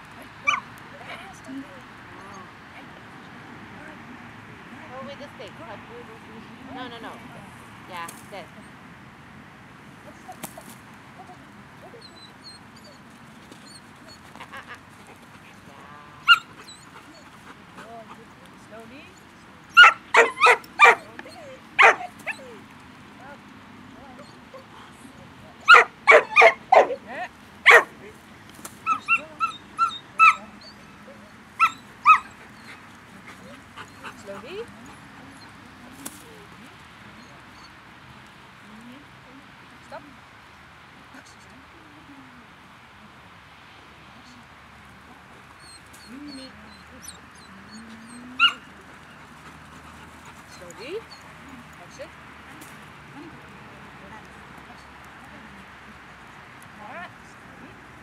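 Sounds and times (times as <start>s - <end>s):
dog barking: 0.4s - 0.6s, 16.2s - 16.5s, 19.8s - 21.1s, 21.8s - 22.5s, 25.6s - 27.0s, 27.6s - 27.9s, 28.8s - 30.5s, 31.6s - 32.3s, 48.4s - 48.6s
dog yipping: 0.4s - 0.7s, 11.2s - 14.7s, 16.2s - 17.3s, 19.7s - 22.6s, 25.6s - 27.0s, 27.7s - 27.9s, 28.8s - 32.8s, 45.6s - 51.4s.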